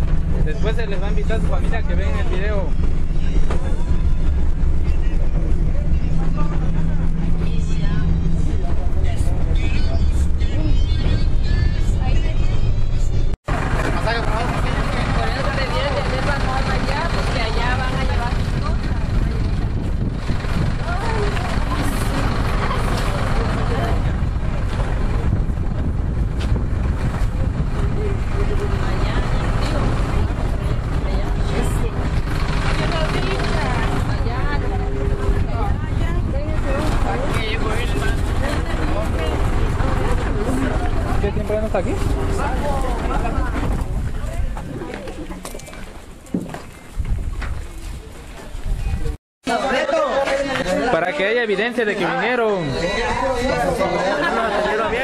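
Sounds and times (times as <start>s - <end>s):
bus engine rumbling: 0.0s - 55.0s
chatter of young voices: 1.4s - 26.2s, 27.0s - 45.8s, 48.5s - 55.0s.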